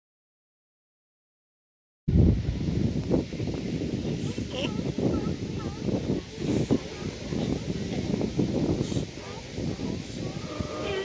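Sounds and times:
wind buffeting microphone: 2.1s - 11.0s.

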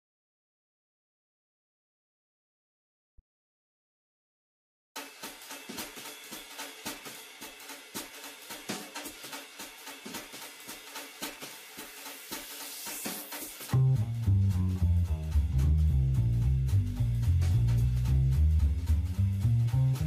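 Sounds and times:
drum kit on cymbals and hi-hat: 5.0s - 20.0s
double bass low notes: 13.7s - 20.0s.

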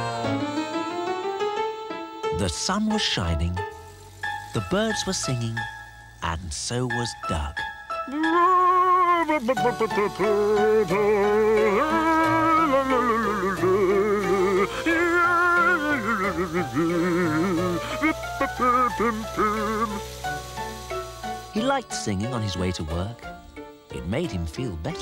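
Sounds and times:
man singing wordless tune: 1.6s - 3.8s, 4.4s - 20.3s.

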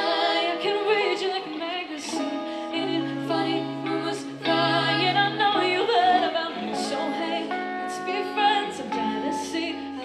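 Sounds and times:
electric guitar: 0.0s - 10.0s
woman singing: 0.0s - 10.0s.

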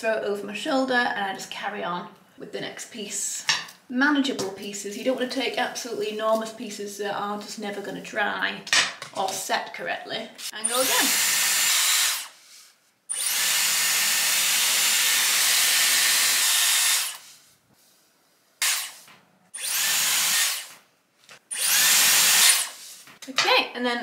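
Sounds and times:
hair styler blowing air: 10.4s - 12.4s, 21.5s - 22.9s.

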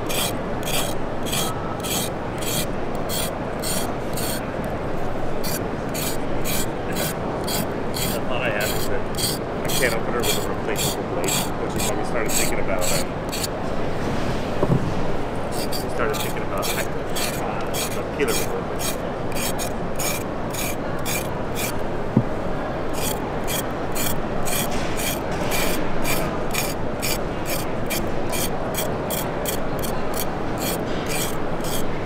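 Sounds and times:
knife scraping a carrot: 0.0s - 4.4s, 5.4s - 13.5s, 15.6s - 21.8s, 22.9s - 31.9s
steady background hum: 0.0s - 32.0s.

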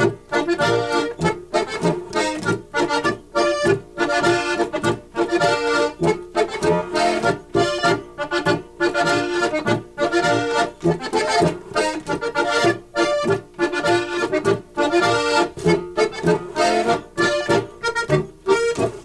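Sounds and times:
button accordions playing polka: 0.0s - 19.0s.

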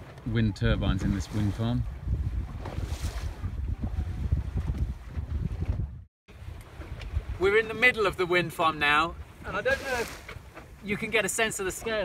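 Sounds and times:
wind buffeting microphone: 0.0s - 10.8s
water washing along hull: 0.0s - 12.0s.

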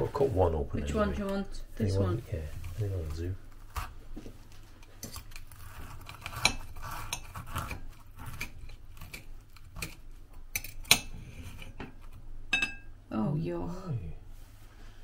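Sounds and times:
cutlery clinking on a plate: 12.5s - 12.9s.

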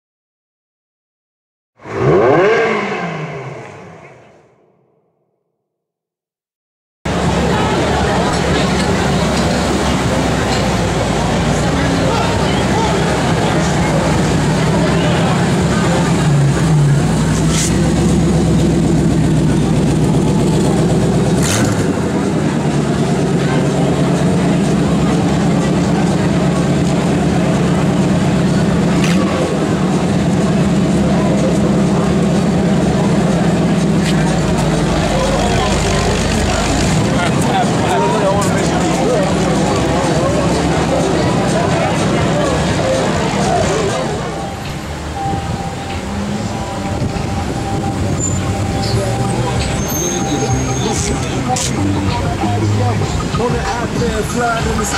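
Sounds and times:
car engine running at low revs: 1.8s - 4.3s, 7.1s - 54.9s.

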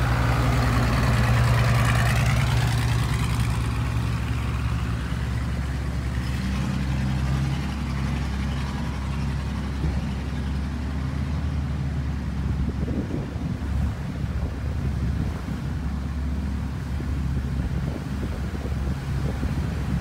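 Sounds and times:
boat engine droning: 0.0s - 20.0s
water and wind hiss: 0.0s - 20.0s.

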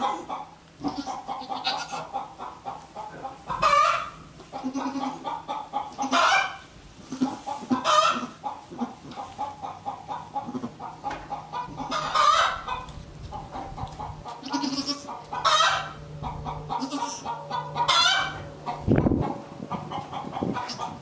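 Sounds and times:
chickens clucking: 0.0s - 21.0s
chicken squawks: 3.5s - 9.0s, 11.6s - 12.9s, 14.3s - 21.0s.

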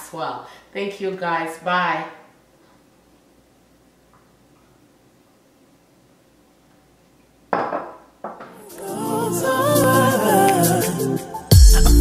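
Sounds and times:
glassware clinking on hard surface: 7.5s - 8.6s
music: 8.6s - 12.0s.

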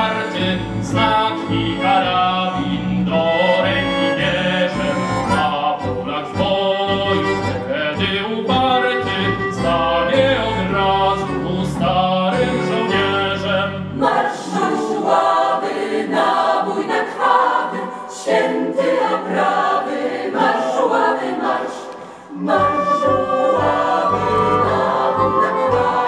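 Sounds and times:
low instrumental accompaniment: 0.0s - 14.0s, 22.4s - 26.0s
mixed choir singing: 13.5s - 26.0s
pulsing bass line: 22.6s - 26.0s.

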